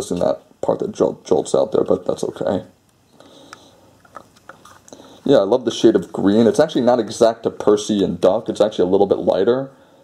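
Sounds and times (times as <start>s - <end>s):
light rubbing of plastic model: 4.0s - 4.9s.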